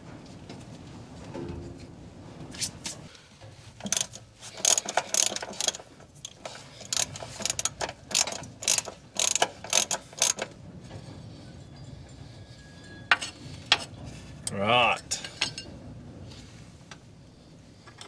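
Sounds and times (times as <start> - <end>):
ratchet wrench clicking: 3.8 - 10.5.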